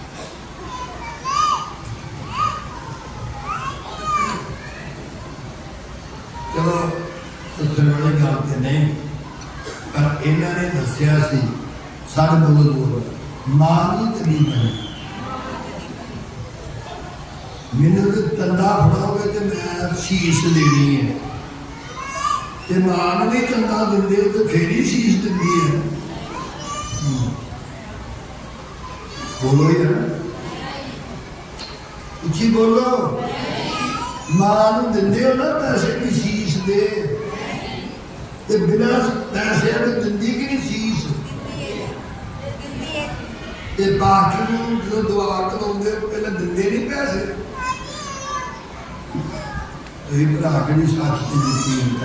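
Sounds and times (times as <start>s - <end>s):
faint children's voices: 0.0s - 52.0s
man preaching over a microphone: 6.5s - 9.2s, 9.9s - 14.9s, 17.7s - 21.2s, 22.6s - 27.5s, 29.3s - 30.3s, 32.2s - 33.3s, 33.9s - 37.4s, 38.5s - 41.4s, 43.8s - 47.5s, 50.1s - 52.0s.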